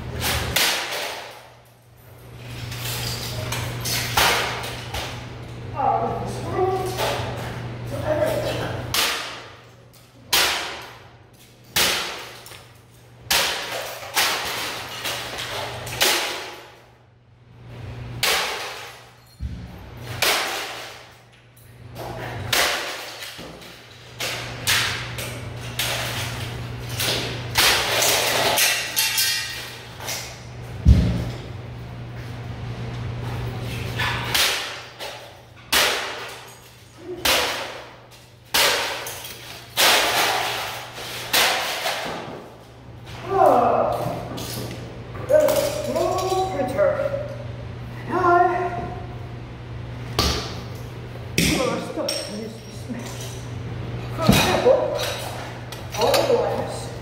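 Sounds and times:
sledgehammer smashing plastic: 0:38.5 - 0:42.5.

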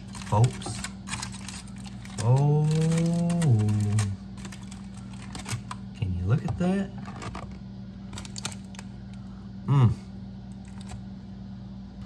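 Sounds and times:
aluminium foil crinkling: 0:00.0 - 0:05.8, 0:08.1 - 0:08.9
man saying ohh: 0:09.6 - 0:10.1.

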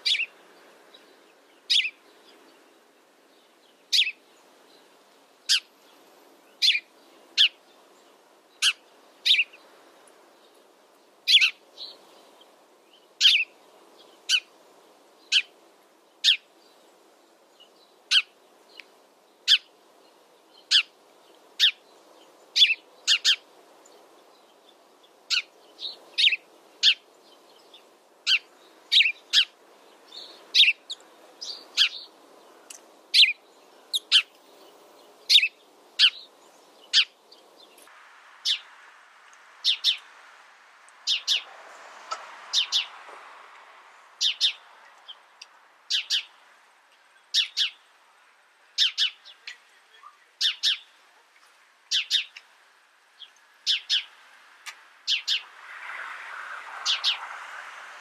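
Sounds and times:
sparrow chirping: 0:00.0 - 0:14.5, 0:15.2 - 0:38.8, 0:39.6 - 0:40.1, 0:41.0 - 0:41.5, 0:42.5 - 0:43.0, 0:43.9 - 0:47.9, 0:48.7 - 0:51.0, 0:51.9 - 0:55.5, 0:56.8 - 0:57.2
faint background noise: 0:00.0 - 0:58.0.

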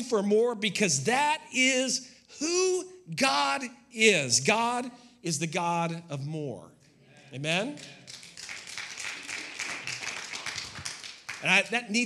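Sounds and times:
congregation clapping: 0:07.2 - 0:12.0.

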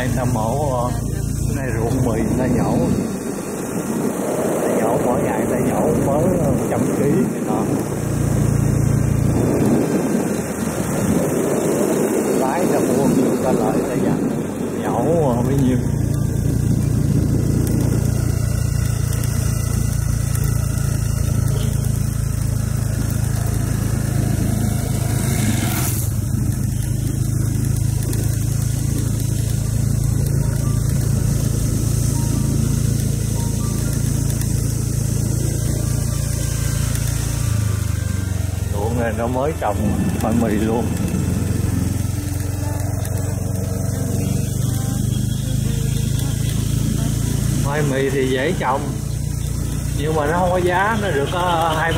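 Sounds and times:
motorbike passing whoosh: 0:00.0 - 0:51.9
motorcycle engine running: 0:00.0 - 0:51.9.

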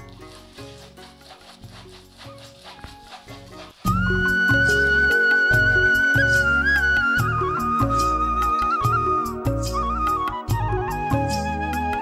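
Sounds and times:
music with light beat: 0:00.0 - 0:12.0
music with high melody and bass: 0:03.5 - 0:12.0.

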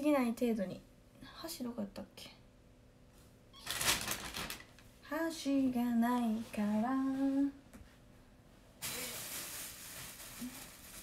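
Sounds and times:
packaging crinkling: 0:03.6 - 0:04.8, 0:08.8 - 0:11.0.

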